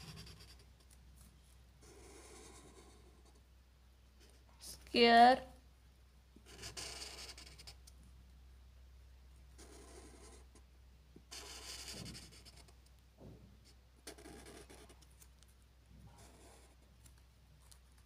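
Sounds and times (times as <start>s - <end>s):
marker scratching on smooth surface: 0.0s - 3.4s, 6.4s - 7.8s, 9.6s - 10.6s, 11.3s - 12.8s, 13.6s - 15.3s, 16.1s - 16.9s.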